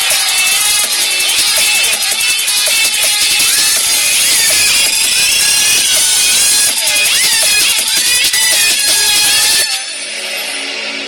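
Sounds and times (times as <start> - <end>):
loud dance music: 0.0 - 11.0.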